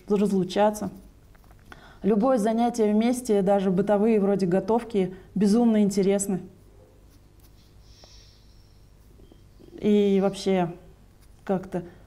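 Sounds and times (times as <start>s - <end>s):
faint hiss: 7.4s - 10.6s.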